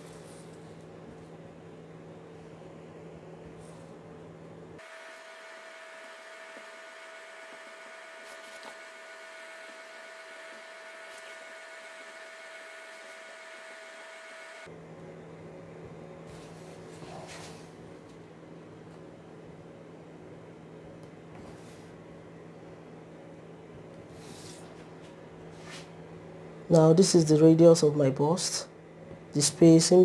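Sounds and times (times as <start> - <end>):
electrical hum and hiss: 0.0 - 30.0
high-pitched whine: 4.8 - 14.7.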